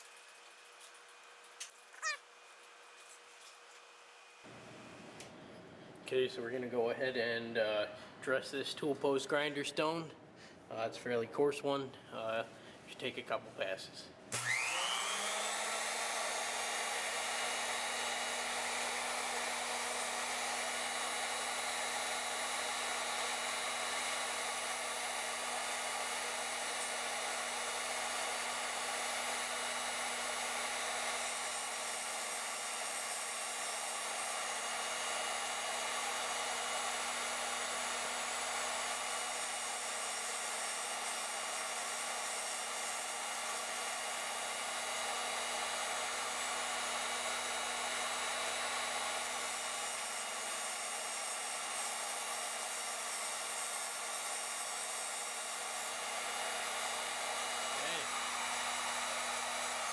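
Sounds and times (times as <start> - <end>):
grinder motor whine: 14.3 - 59.9.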